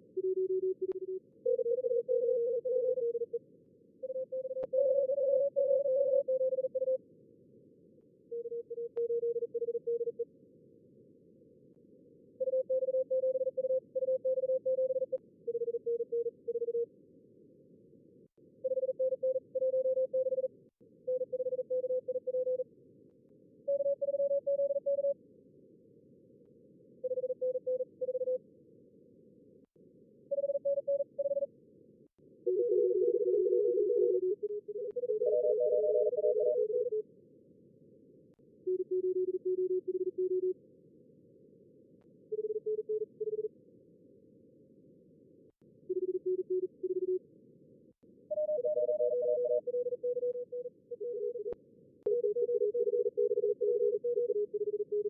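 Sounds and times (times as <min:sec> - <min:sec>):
morse code tones: 0:32.5 - 0:37.0, 0:48.3 - 0:51.5.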